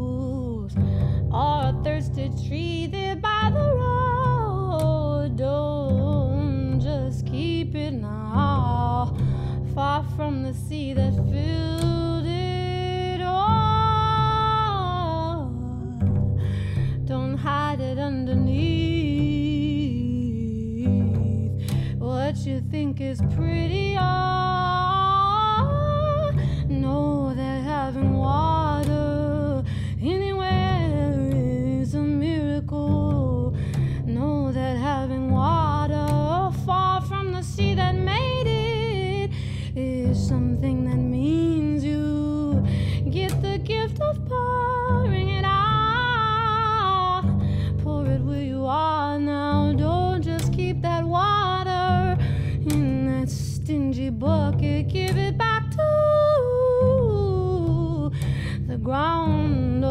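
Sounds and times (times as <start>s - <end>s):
double bass plucked pizzicato: 0.0s - 59.9s
woman singing: 0.0s - 59.9s.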